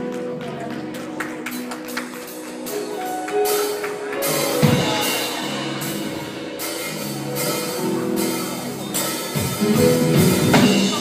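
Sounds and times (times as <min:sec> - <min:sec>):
drum kit with cymbals: 0:02.3 - 0:11.0.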